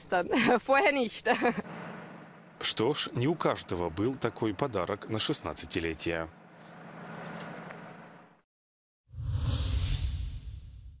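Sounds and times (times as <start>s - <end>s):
whoosh sound effect: 9.1s - 11.0s.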